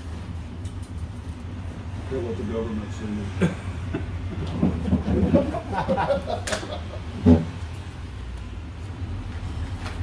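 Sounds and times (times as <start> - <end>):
low room rumble: 0.0 - 10.0
burst of laughter: 5.3 - 7.1.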